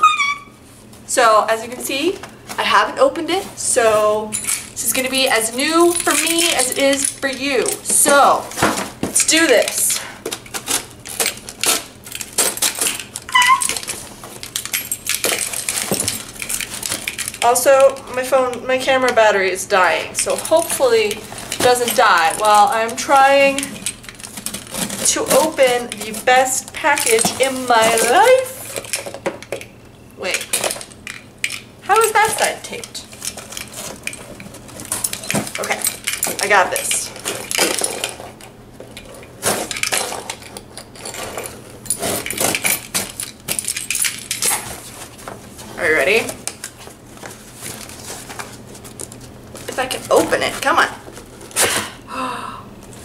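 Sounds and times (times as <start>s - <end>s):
brief squeak: 0.0s - 0.6s, 13.3s - 13.7s
keys jingling: 4.2s - 8.4s, 10.7s - 18.6s, 20.1s - 44.9s
packing tape tearing off cardboard: 8.1s - 14.6s, 23.4s - 28.9s, 46.4s - 52.0s
key scraping packing tape: 9.3s - 18.0s.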